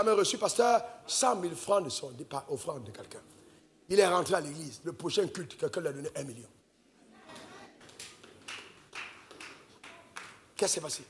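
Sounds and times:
soft hand claps: 0:07.8 - 0:11.0.

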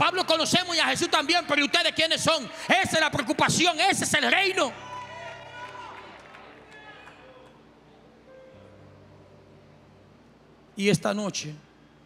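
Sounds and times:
man's amplified voice echoing: 0:00.0 - 0:04.8, 0:10.8 - 0:11.7
steady low hum: 0:07.4 - 0:12.0.

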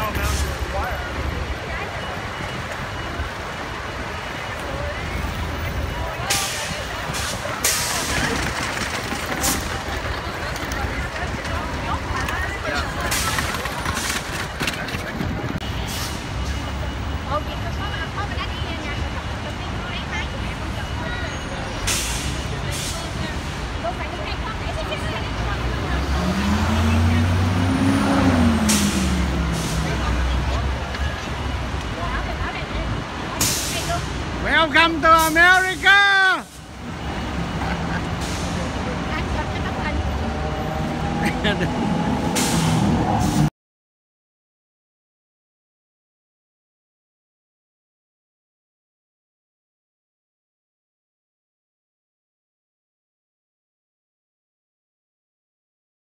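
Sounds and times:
street traffic: 0:00.0 - 0:43.5
voices of passers-by: 0:00.0 - 0:43.5.

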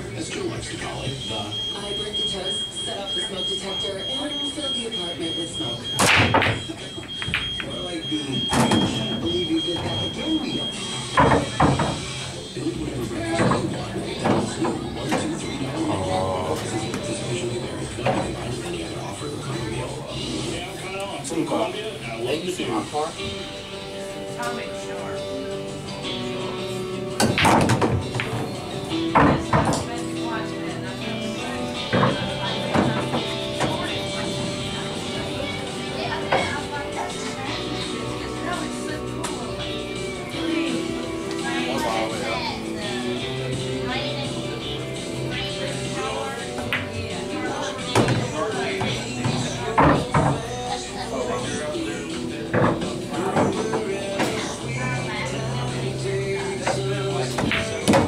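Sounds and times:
background music: 0:00.0 - 0:58.0
indistinct talking: 0:00.0 - 0:58.0
pool balls clicking and colliding: 0:05.9 - 0:12.2, 0:13.2 - 0:18.8, 0:27.2 - 0:29.9, 0:46.5 - 0:50.6, 0:52.4 - 0:54.6, 0:56.5 - 0:58.0.

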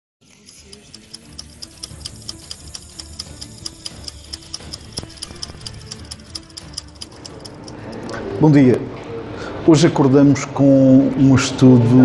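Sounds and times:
clock ticking: 0:00.2 - 0:08.2
low music bed: 0:00.2 - 0:08.8.

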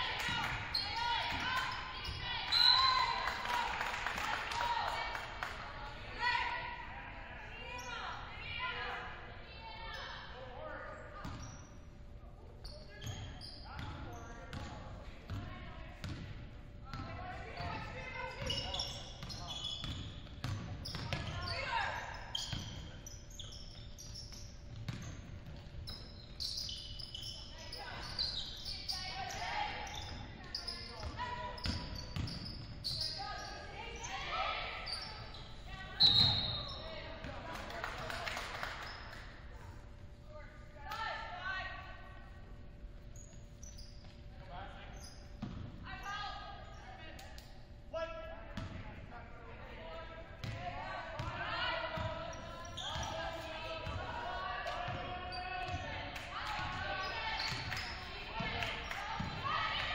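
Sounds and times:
basketball bouncing on hardwood: 0:16.0 - 0:16.3.

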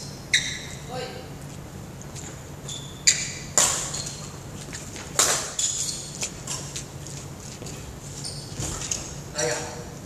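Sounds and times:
shoe squeaks: 0:00.0 - 0:00.9, 0:02.2 - 0:09.8
light footsteps on wooden court: 0:03.6 - 0:09.2.

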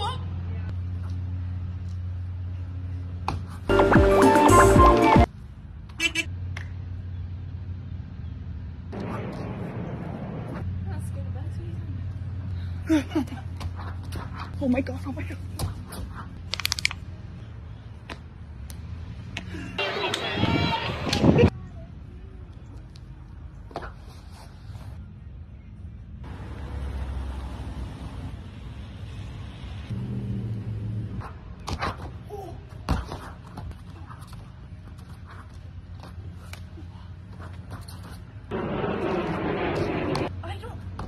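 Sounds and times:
wind rumble on microphone: 0:20.4 - 0:21.6.

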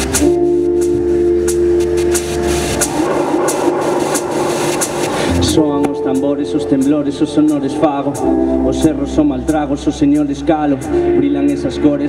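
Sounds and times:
electronic hip hop backing track: 0:00.0 - 0:12.0.

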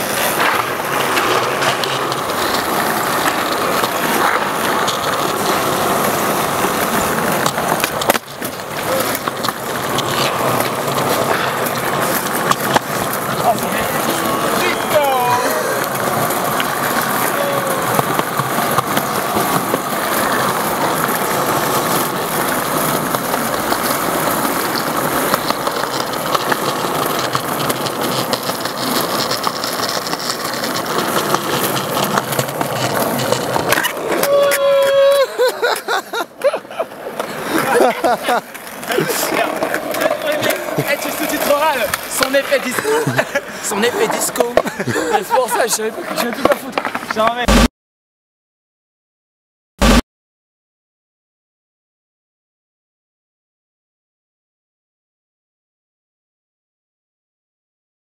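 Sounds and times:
skateboard wheels rolling on pavement: 0:00.0 - 0:47.7.

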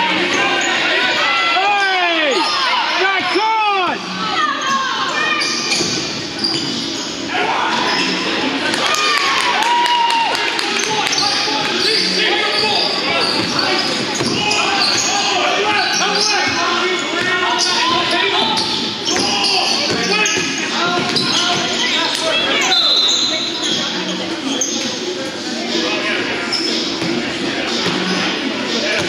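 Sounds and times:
sneakers squeaking on floor: 0:04.1 - 0:08.3, 0:10.8 - 0:29.0
people calling out: 0:06.5 - 0:24.8
basketball bouncing: 0:18.6 - 0:21.8.

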